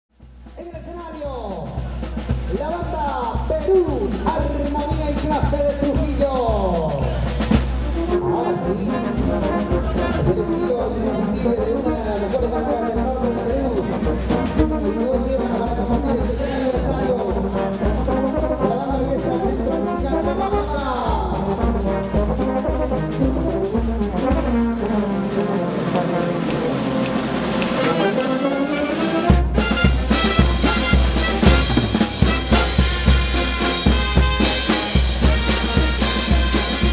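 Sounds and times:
brass band playing: 0.2 - 36.9
heavy drum hits: 29.3 - 36.9.

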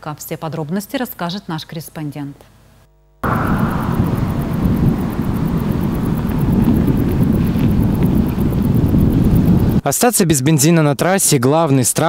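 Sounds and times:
road vehicles rumbling: 3.2 - 9.6
wind on microphone: 3.2 - 9.8.

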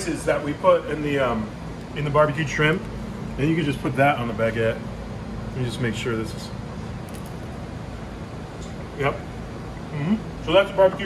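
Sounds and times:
kitchen ventilation humming: 0.0 - 11.0.

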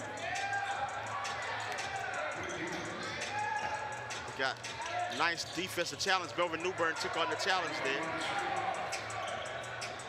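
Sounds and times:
voices in gym: 0.0 - 10.0.

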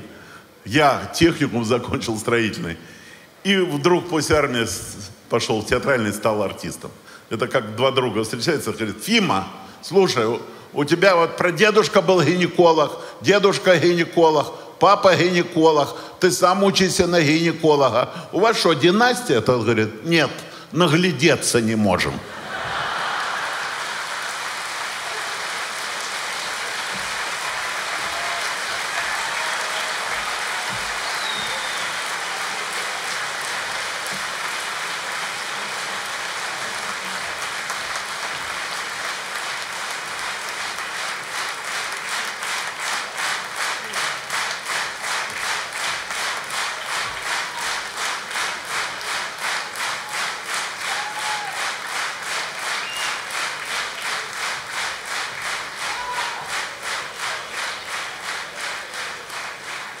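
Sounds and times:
audience applauding: 22.3 - 60.0
rhythmic clapping in unison: 23.5 - 60.0.

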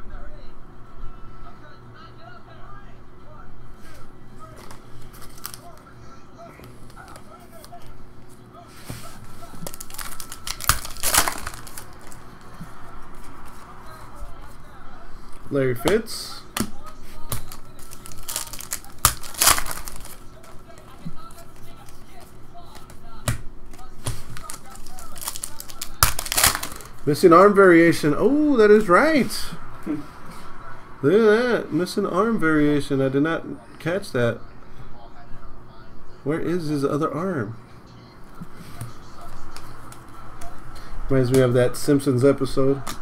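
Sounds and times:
foil wrappers crinkling: 4.4 - 5.9, 8.8 - 14.4, 15.8 - 27.2.

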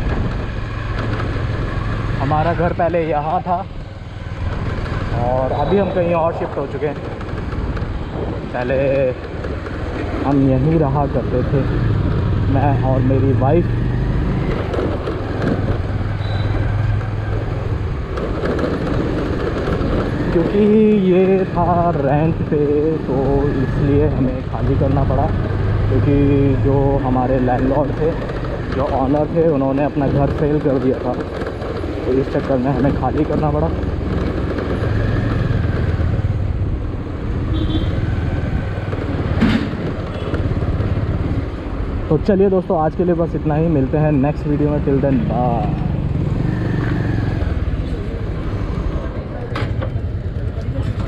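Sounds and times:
road and wind noise: 0.0 - 51.0.

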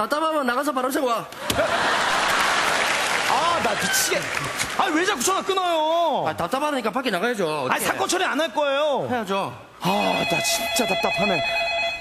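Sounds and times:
audience applauding: 1.5 - 5.8.

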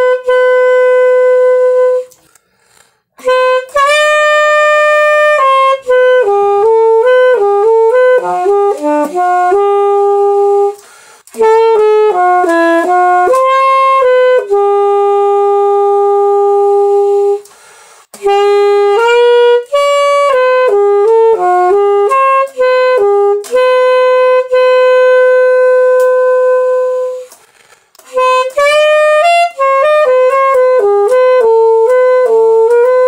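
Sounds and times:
saxophone long note: 0.0 - 2.2, 3.2 - 17.6, 18.2 - 27.4, 28.0 - 33.0.

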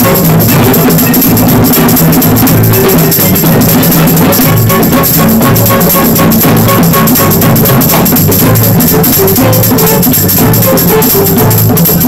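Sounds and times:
hand drums: 0.0 - 12.0
violin playing a tune: 0.0 - 12.0.

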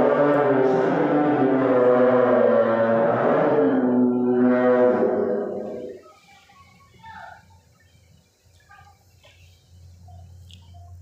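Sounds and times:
man chanting a long note: 0.0 - 6.0
low hum: 0.0 - 6.2.

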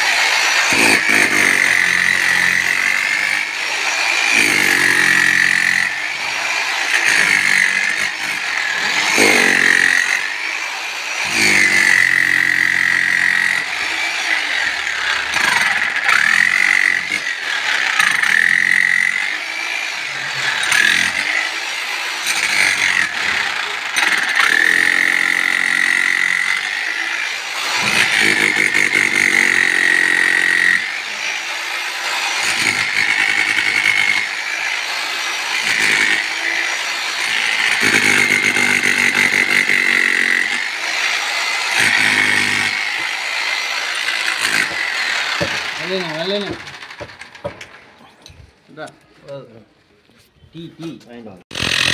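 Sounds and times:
demolition hammer chiselling earth: 0.0 - 47.8, 51.5 - 51.9.

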